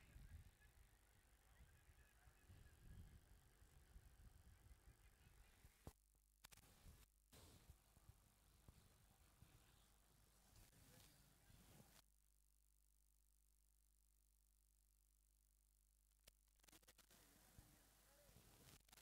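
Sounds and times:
faint background hiss: 0.0 - 12.0, 16.5 - 19.0.

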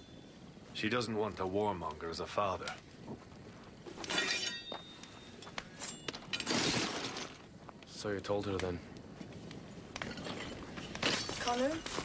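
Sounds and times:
metal weapons clattering: 4.0 - 4.8, 10.1 - 12.0.

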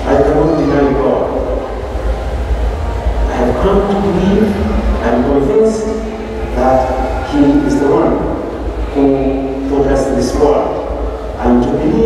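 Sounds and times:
man's voice: 0.0 - 1.6, 3.3 - 12.0
low rumble through microphone: 0.0 - 12.0.

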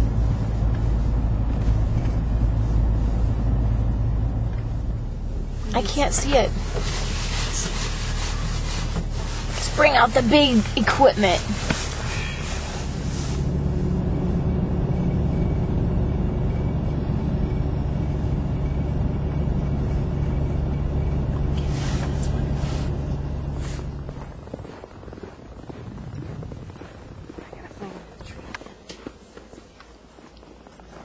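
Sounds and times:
car engine drone from cabin: 0.0 - 31.0.

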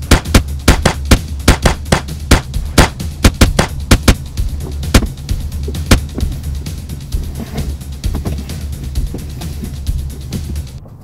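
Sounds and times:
rapid sharp bangs: 0.0 - 6.4
steady low hum: 0.0 - 11.0.

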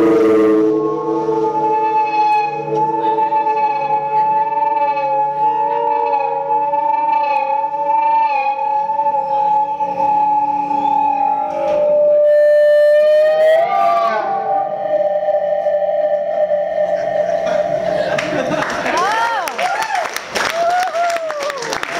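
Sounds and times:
electric violin: 0.0 - 19.2
high tone: 0.0 - 19.2
electric guitar with effects: 0.0 - 19.4
sliding pitch sweep: 0.0 - 19.4.

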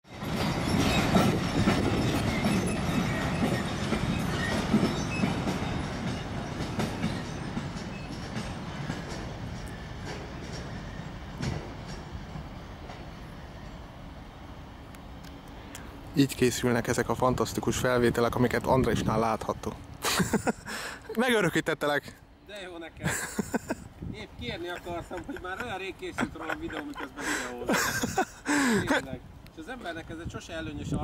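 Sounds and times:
train passing on tracks: 0.0 - 31.0
wheels clicking on rails: 0.1 - 13.4, 24.4 - 31.0.

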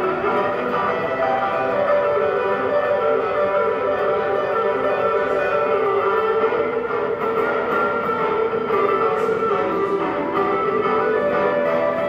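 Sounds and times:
looped electric guitar: 0.0 - 12.0.

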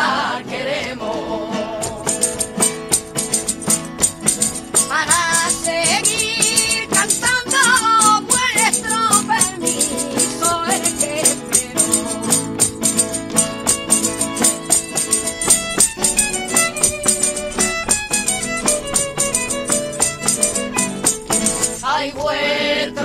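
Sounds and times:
guitar: 0.0 - 23.0
violin: 0.0 - 23.0
tambourine jingles: 2.0 - 21.8
woman singing: 4.8 - 12.7, 21.8 - 23.0.

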